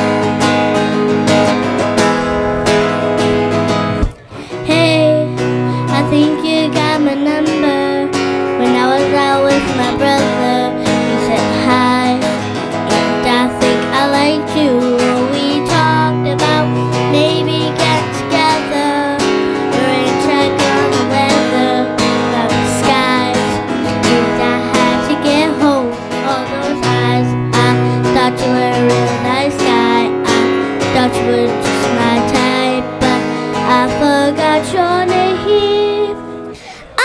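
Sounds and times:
girl singing into microphone: 0.0s - 37.0s
strummed acoustic guitar: 0.0s - 37.0s.

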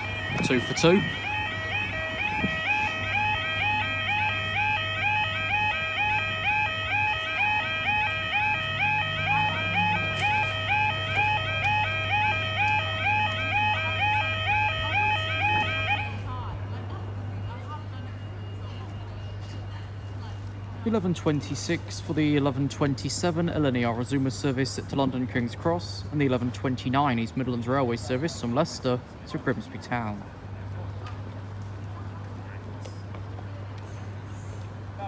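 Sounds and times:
level crossing alarm yelping: 0.0s - 16.2s.

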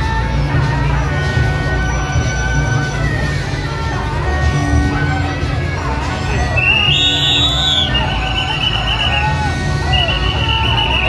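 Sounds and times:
crowd noise: 0.0s - 11.0s
shawm playing high notes: 0.0s - 11.0s.

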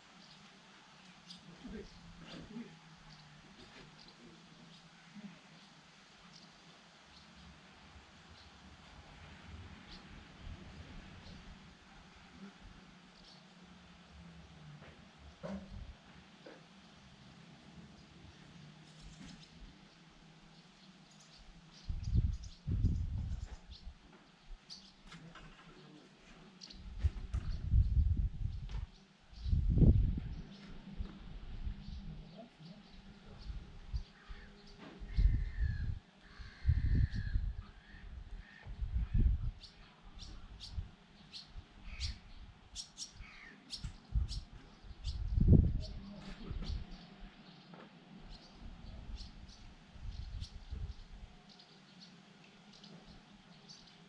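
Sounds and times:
birds chirping: 15.4s - 54.0s.

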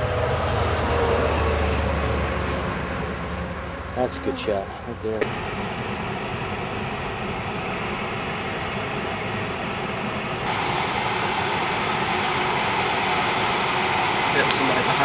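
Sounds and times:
road and engine noise in cabin: 0.0s - 15.0s.

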